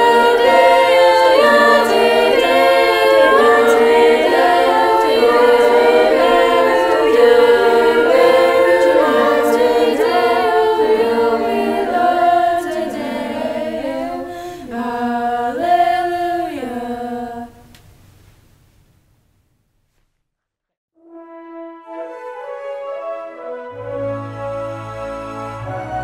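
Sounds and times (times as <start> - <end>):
choir singing unaccompanied: 0.0 - 17.7.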